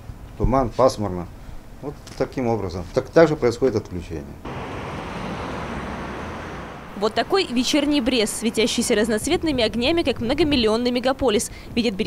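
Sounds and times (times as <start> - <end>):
cars driving on busy street: 4.4 - 11.2.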